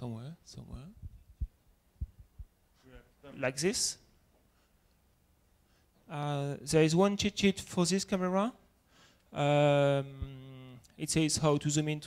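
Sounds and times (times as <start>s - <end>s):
dull low thumps: 1.0s - 2.6s.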